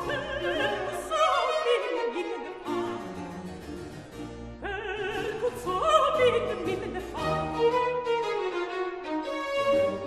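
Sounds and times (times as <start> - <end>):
baroque string ensemble: 0.0 - 10.0.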